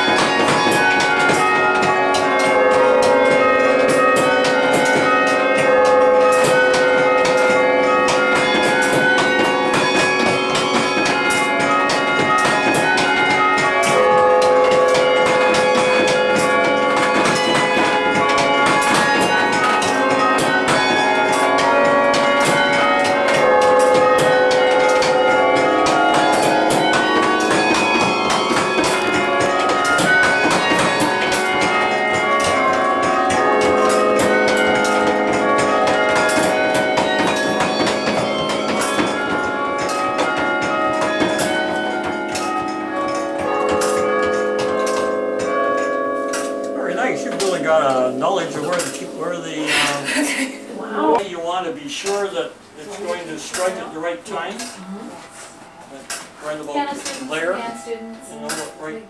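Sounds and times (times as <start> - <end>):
wooden batons knocking: 0.0 - 51.2
carillon bell melody: 0.0 - 59.0.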